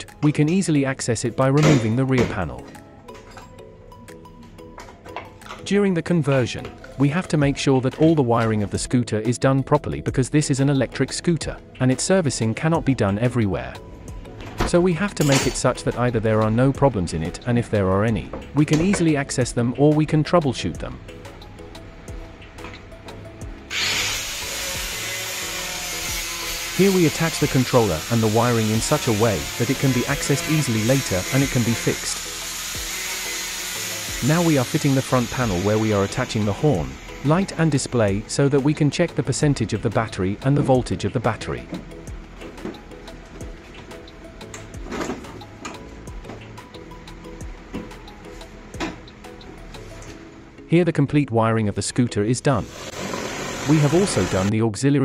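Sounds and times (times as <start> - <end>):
soft background music: 0.0 - 55.0
power tool whirring: 23.7 - 37.3, 52.6 - 54.5.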